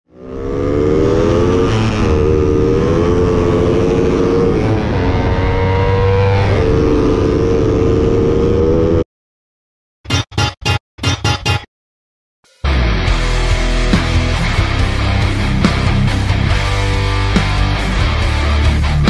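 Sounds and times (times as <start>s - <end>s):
motorcycle engine at high revs: 0.1s - 9.0s.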